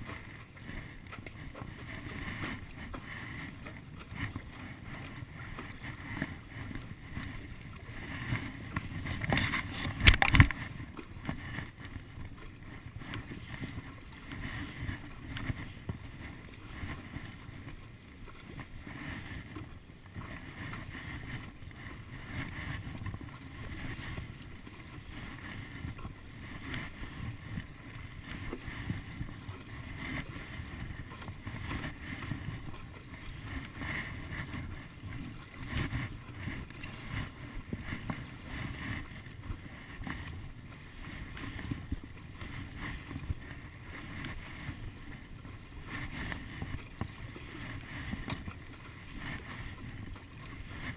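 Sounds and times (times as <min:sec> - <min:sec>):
paddle strokes in water: 0:00.0 - 0:50.9
wind rumble on microphone: 0:00.0 - 0:50.9.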